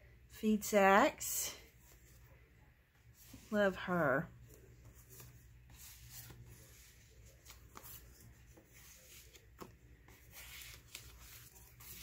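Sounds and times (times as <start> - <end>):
paper cards rustling and sliding: 4.4 - 12.0.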